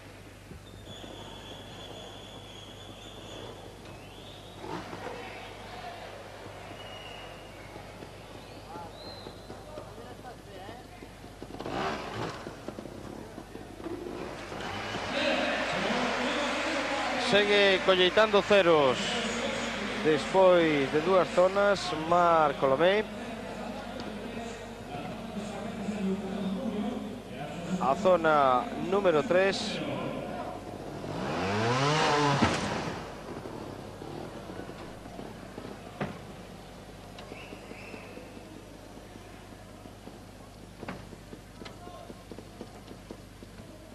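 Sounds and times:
indoor arena background noise: 0:00.0 - 0:43.9
motorcycle engine revving: 0:04.4 - 0:05.6, 0:11.4 - 0:15.5, 0:30.6 - 0:36.1.

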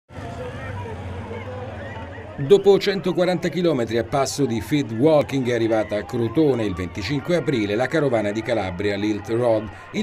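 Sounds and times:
many voices talking: 0:00.1 - 0:10.0.

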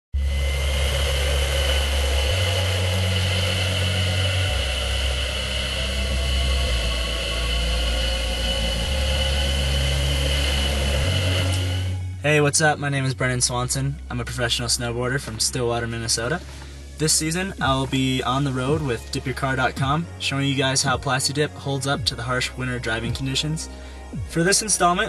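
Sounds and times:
deep low hum: 0:00.1 - 0:25.0
car driving at speed: 0:00.2 - 0:12.1.

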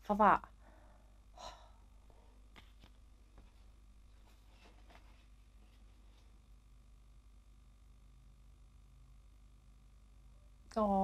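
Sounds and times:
soft breath: 0:00.5 - 0:02.5.

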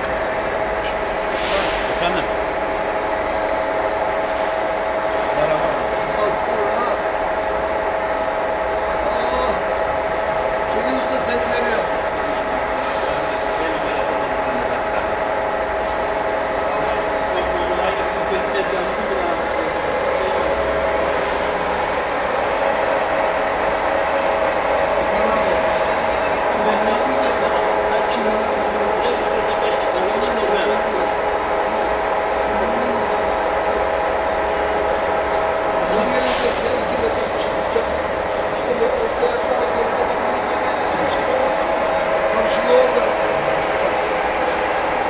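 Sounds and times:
lathe gear whine: 0:00.0 - 0:45.0
mechanical drone: 0:00.0 - 0:45.0.

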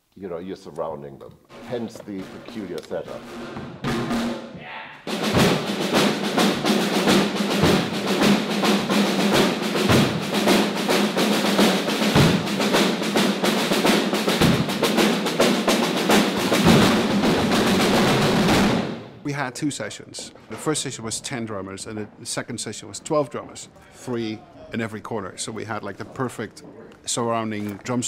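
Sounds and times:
drum kits playing fast groove: 0:01.5 - 0:19.2.

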